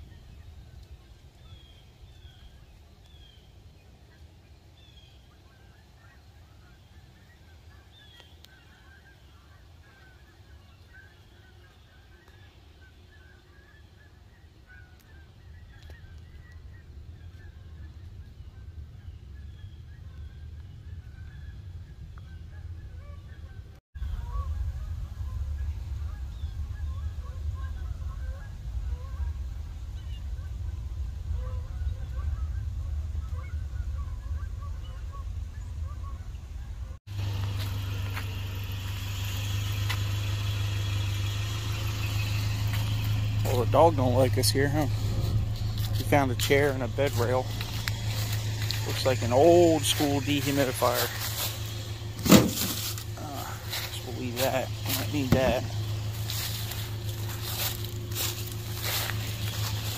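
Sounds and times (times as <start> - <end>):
bird chirps: 0.0 - 36.5, 37.1 - 59.9
geese honking: 4.1 - 59.9
low rumble: 14.7 - 59.9.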